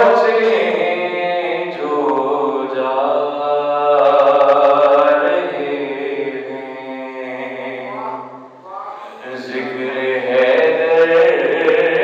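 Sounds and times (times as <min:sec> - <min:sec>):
man chanting into a microphone: 0:00.0 - 0:08.3, 0:09.0 - 0:12.0.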